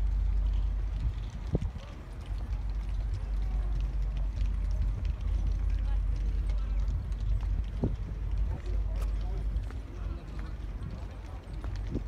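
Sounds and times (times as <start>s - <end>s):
low rumble: 0.0s - 12.0s
faint indistinct voices: 0.8s - 12.0s.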